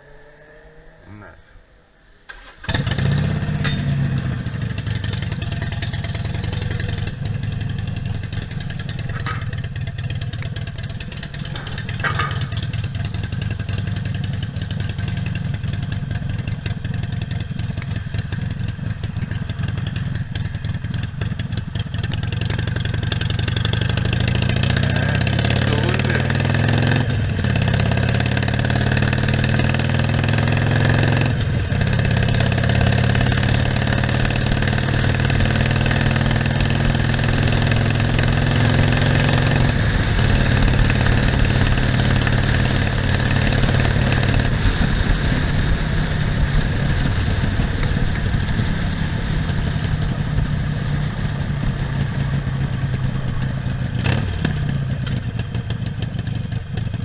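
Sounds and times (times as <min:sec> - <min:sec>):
motorcycle engine accelerating: 0:00.0 - 0:01.3, 0:02.3 - 0:57.0.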